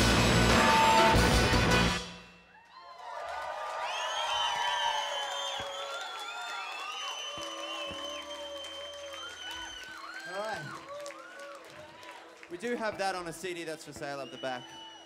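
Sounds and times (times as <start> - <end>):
crowd cheering and yelling: 0.0 - 15.0
long high whistles: 3.9 - 10.4, 14.2 - 15.0.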